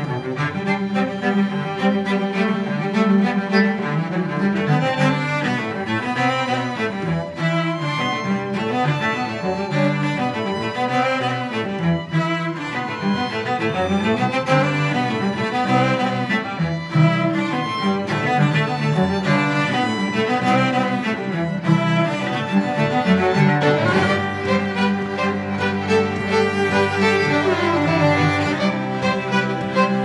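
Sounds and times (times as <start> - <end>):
cellos playing low notes: 0.0 - 30.0
violins playing: 0.0 - 30.0.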